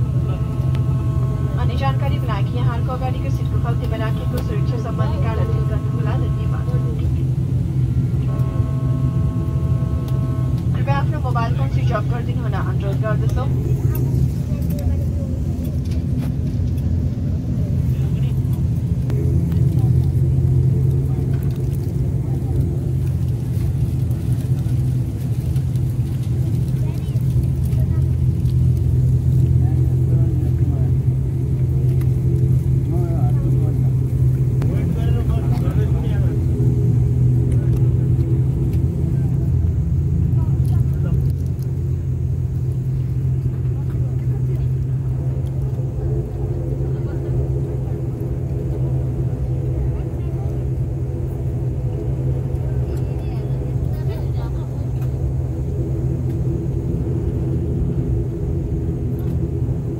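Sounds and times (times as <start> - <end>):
turboprop engines droning: 0.0 - 59.9.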